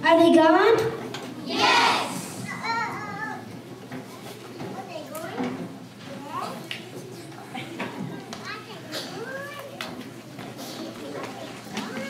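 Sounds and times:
children chattering: 1.4s - 12.0s.

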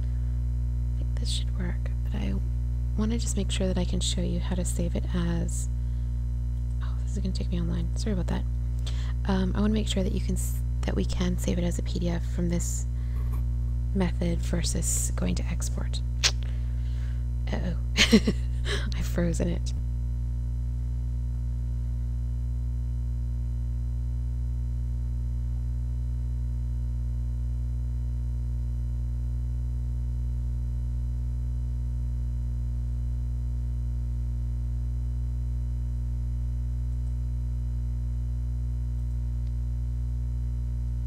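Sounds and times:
low electrical hum: 0.0s - 41.0s.

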